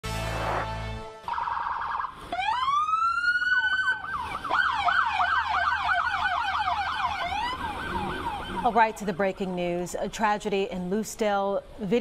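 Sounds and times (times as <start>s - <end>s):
police siren wail and yelp: 1.3s - 9.5s.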